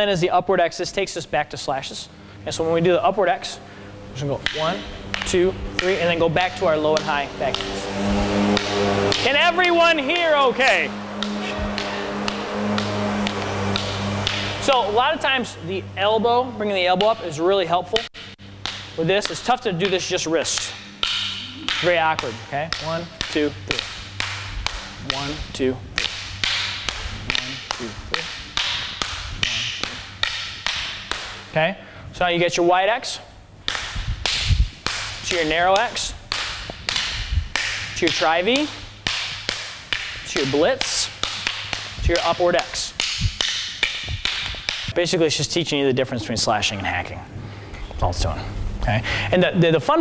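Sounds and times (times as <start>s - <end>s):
low background music: 2.4s - 31.5s
fighting sticks clacking: 4.2s - 31.6s, 33.0s - 45.0s
sticks clacking together: 18.1s - 25.3s.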